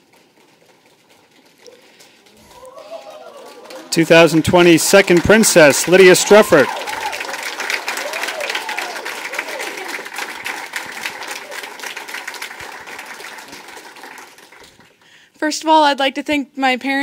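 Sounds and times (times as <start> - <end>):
small group applauding: 0.0 - 15.2.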